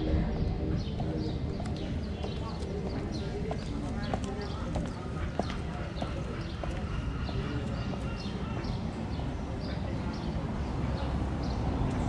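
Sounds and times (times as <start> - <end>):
street rumble: 0.0 - 12.0
voices: 0.0 - 12.0.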